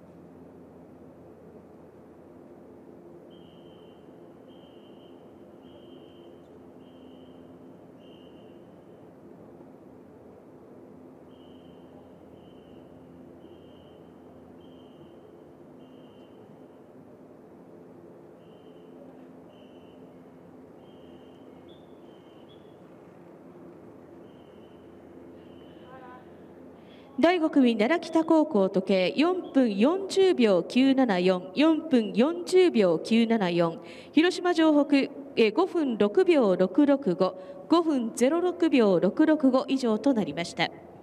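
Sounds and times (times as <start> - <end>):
faint steady hum: 0.0 - 41.0.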